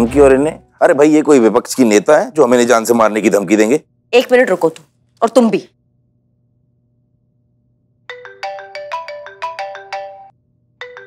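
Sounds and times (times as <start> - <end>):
mobile phone ringtone melody: 8.1 - 11.0.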